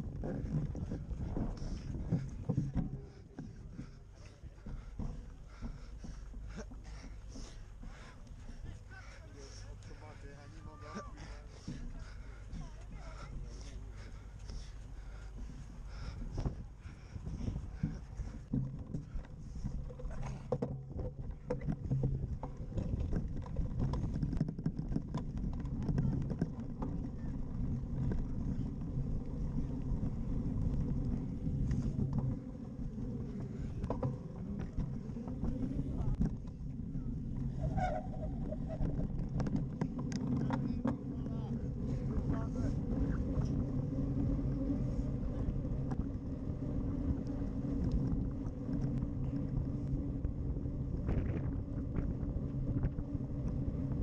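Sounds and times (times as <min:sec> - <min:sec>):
bike rattling and knocking: 0:00.0 - 0:54.0
bike rumble: 0:00.0 - 0:54.0
wind buffeting microphone: 0:00.0 - 0:54.0.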